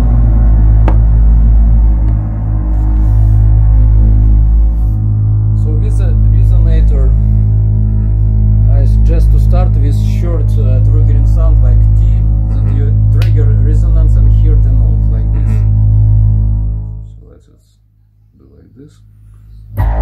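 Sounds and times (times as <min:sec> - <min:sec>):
electronic low drone: 0:00.0 - 0:20.0.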